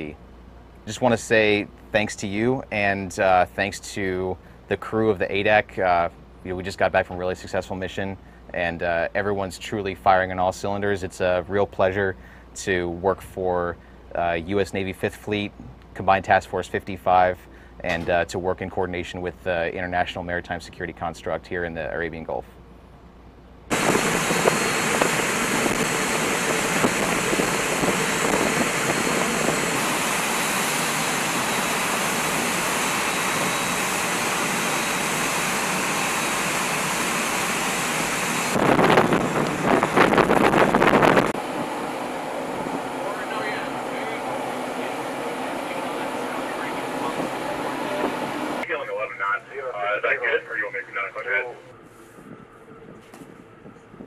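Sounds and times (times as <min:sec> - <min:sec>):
boat engine: 0:23.6 - 0:54.0
wind rushing across microphone: 0:23.7 - 0:34.7, 0:37.5 - 0:43.0, 0:51.8 - 0:54.0
water rushing: 0:23.7 - 0:48.6.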